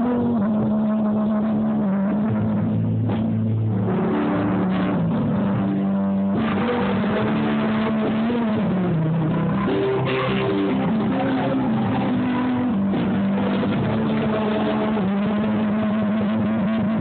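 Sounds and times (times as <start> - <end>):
acoustic guitar: 0.0 - 17.0
electric guitar: 0.0 - 17.0
keyboard: 0.0 - 17.0.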